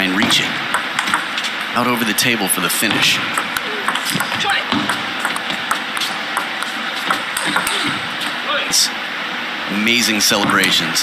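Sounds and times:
ping pong ball clicking: 0.7s - 1.4s, 3.4s - 7.8s.

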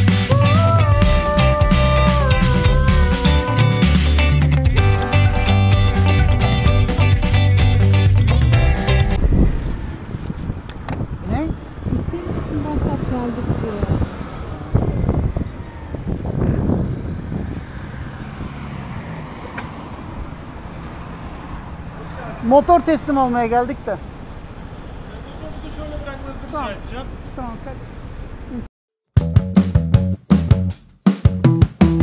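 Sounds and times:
music with steady beat: 0.0s - 9.2s, 29.2s - 32.0s
scooter road noise: 0.0s - 28.7s
wind noise on microphone: 8.4s - 19.3s.

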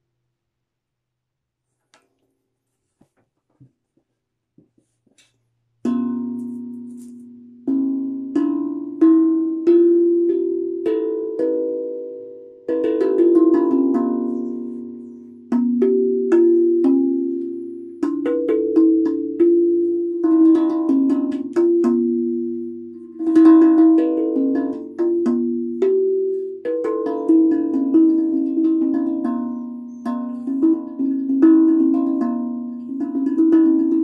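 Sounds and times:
steel tongue drum melody: 5.8s - 34.0s.

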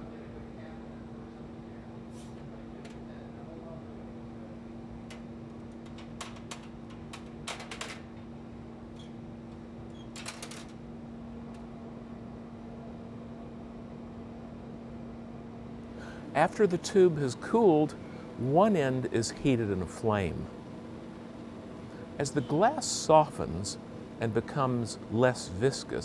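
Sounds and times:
low hum of shop equipment: 0.0s - 26.0s.

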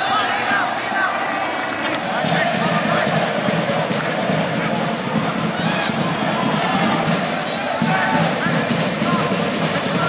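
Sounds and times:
voices shouting: 0.0s - 3.8s, 4.4s - 10.0s
stadium crowd rush: 0.0s - 10.0s.

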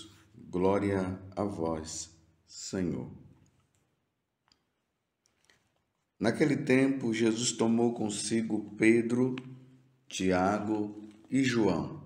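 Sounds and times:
man's voice in reverberant church: 0.0s - 3.6s, 6.0s - 12.0s.

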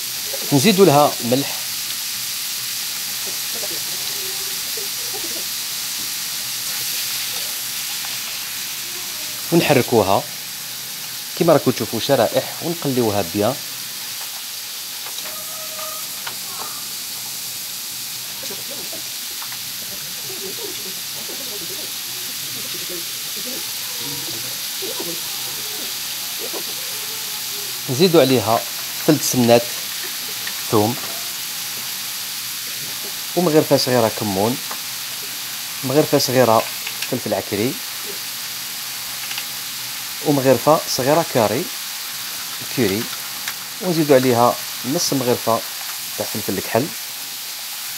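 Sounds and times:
liver sizzling in a pan: 0.0s - 47.9s.

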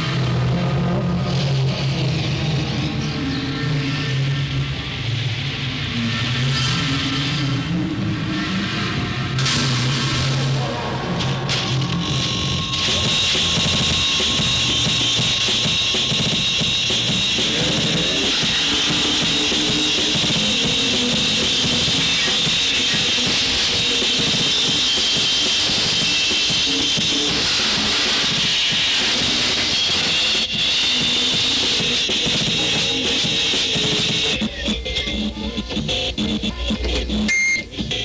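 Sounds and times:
low droning tones: 0.0s - 34.9s
harsh noise wall: 0.0s - 38.0s.

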